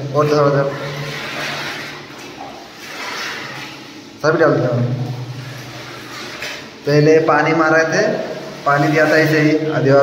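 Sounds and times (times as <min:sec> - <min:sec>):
water pouring into plastic bucket: 0:00.0 - 0:10.0.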